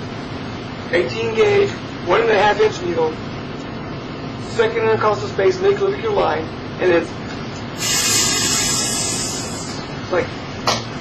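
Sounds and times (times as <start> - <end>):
man making hissing sound with mouth: 7.8 - 9.9.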